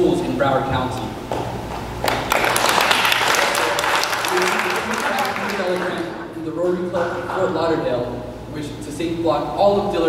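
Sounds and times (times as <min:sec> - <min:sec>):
audience applauding: 0:02.0 - 0:06.5
person speaking: 0:04.2 - 0:09.6.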